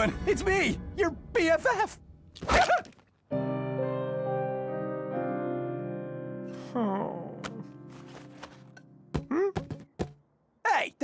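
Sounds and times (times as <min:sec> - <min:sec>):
soft keyboard chord: 0:03.3 - 0:09.1.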